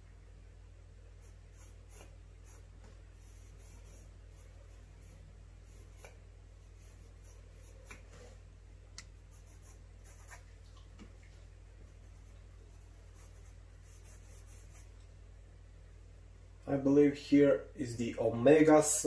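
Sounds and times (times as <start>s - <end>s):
pencil scratching on paper: 1.2s - 8.4s, 9.3s - 10.5s, 11.8s - 14.9s.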